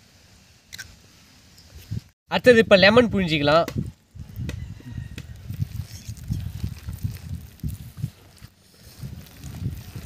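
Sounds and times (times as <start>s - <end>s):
hand squelching wet paste: 5.3s - 10.0s.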